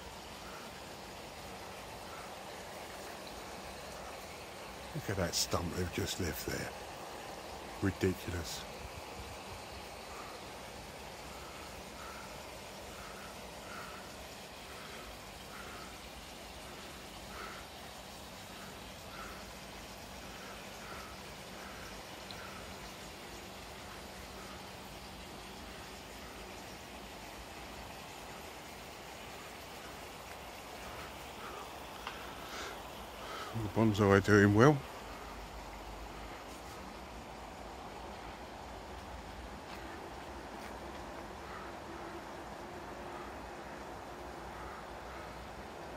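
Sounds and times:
water spilling into pond: 0.0 - 45.9.

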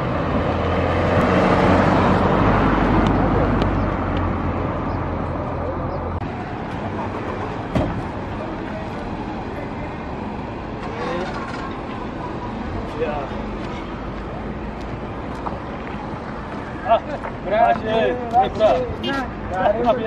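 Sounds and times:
vehicle passing: 0.0 - 20.0.

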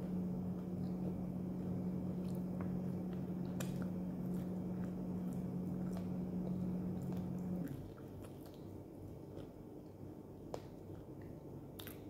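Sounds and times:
steady low hum: 0.0 - 12.0
person chewing: 0.5 - 12.0.

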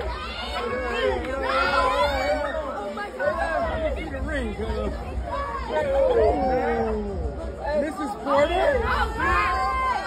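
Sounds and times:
people chattering excitedly: 0.0 - 10.0.

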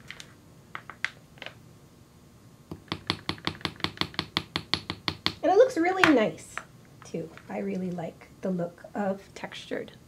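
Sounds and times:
hammer tapping metal: 2.7 - 5.4.

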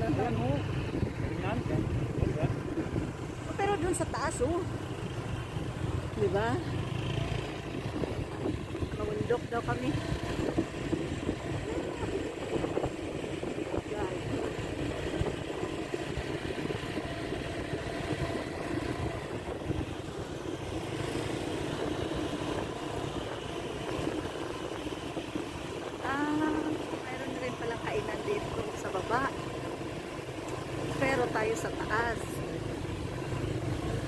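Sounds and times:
vehicle engine and road rumble: 0.0 - 34.0.

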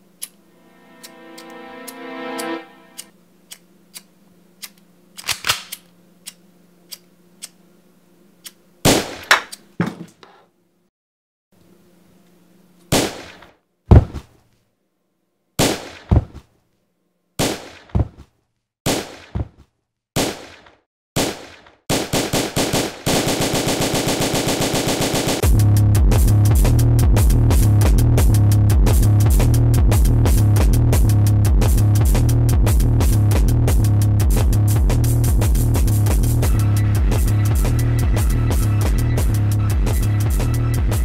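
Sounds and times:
fast drum roll rattle: 23.2 - 25.5
bass-heavy electronic music: 25.4 - 41.0.

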